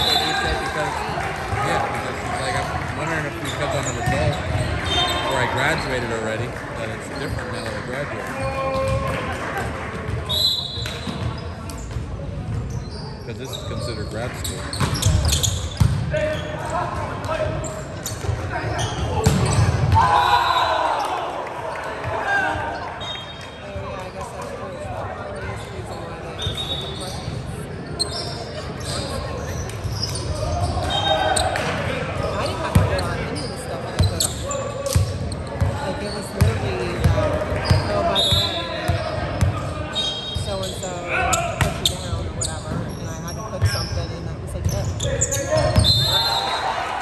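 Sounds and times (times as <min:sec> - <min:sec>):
sneakers squeaking: 0:00.0 - 0:09.2, 0:10.0 - 0:46.8
players' voices echoing: 0:00.0 - 0:47.0
volleyball hits and bounces: 0:19.0 - 0:20.2.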